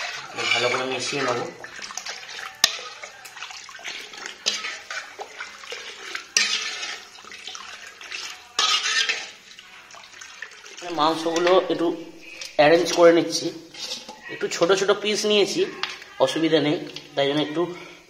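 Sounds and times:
metal spoon scraping pot: 0:00.0 - 0:17.1
stirring through liquid: 0:00.0 - 0:17.6.

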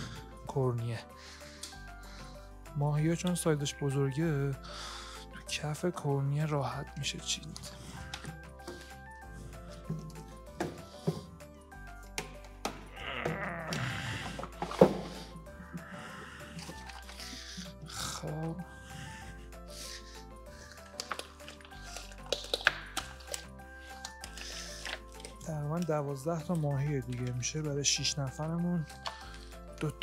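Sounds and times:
light background music: 0:00.0 - 0:30.0.

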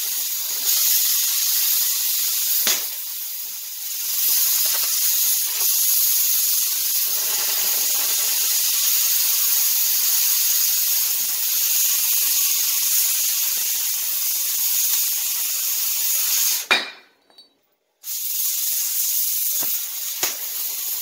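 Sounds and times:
cutting torch hissing: 0:00.0 - 0:16.7, 0:18.0 - 0:21.0.

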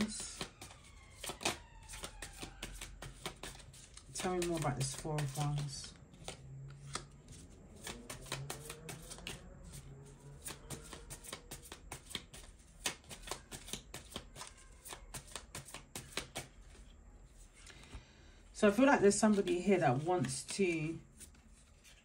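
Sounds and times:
playing cards being shuffled: 0:00.0 - 0:17.9, 0:19.2 - 0:22.0.

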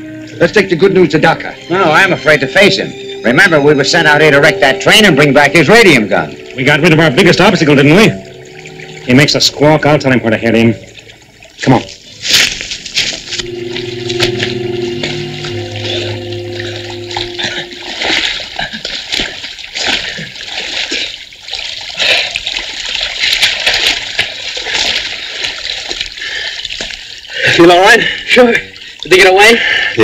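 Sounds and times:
low held chord: 0:00.0 - 0:11.6, 0:12.3 - 0:19.5
water splashing and sloshing: 0:03.0 - 0:30.0.

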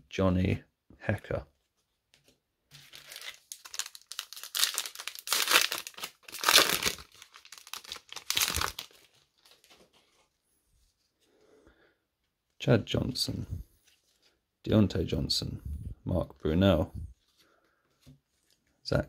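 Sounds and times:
foil wrapper tearing and crinkling: 0:02.8 - 0:09.2.

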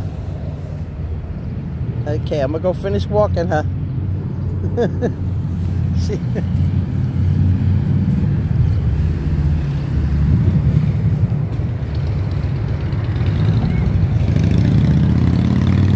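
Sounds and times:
woman laughing: 0:04.6 - 0:05.3, 0:06.0 - 0:06.6.

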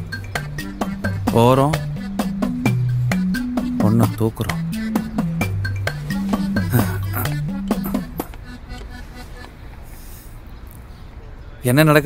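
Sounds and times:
background music with bass line: 0:00.0 - 0:08.8
faint ambience: 0:00.0 - 0:11.4.

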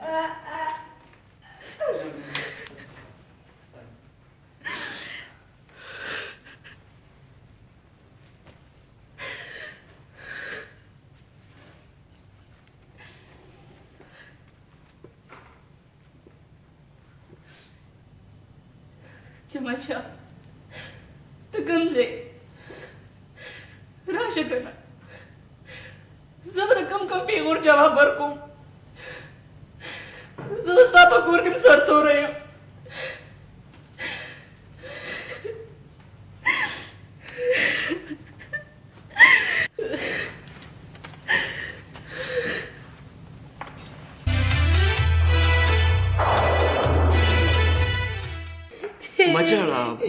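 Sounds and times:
woman sobbing: 0:00.0 - 0:02.4, 0:34.0 - 0:35.8, 0:36.4 - 0:40.4, 0:41.2 - 0:42.8.

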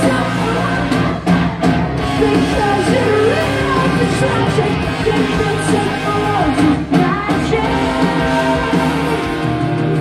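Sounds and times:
woman singing: 0:00.0 - 0:01.4, 0:02.2 - 0:09.5
live rock band: 0:00.0 - 0:10.0.

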